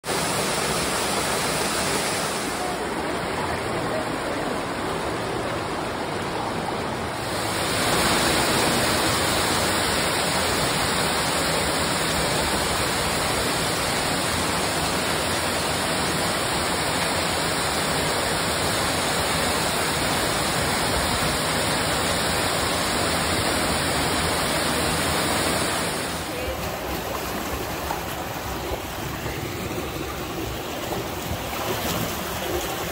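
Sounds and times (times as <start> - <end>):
creek water and waterfalls rushing: 0.0 - 32.9.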